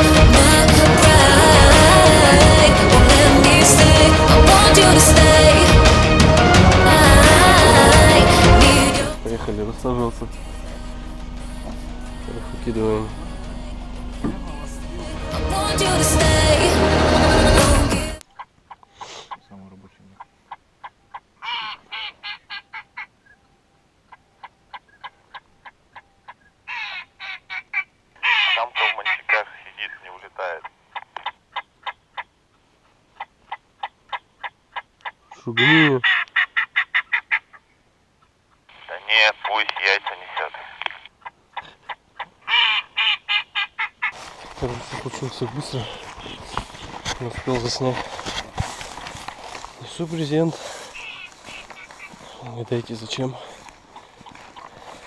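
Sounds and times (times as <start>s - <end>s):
ducks quacking: 18.4s - 23.2s, 24.1s - 32.4s, 33.2s - 55.0s.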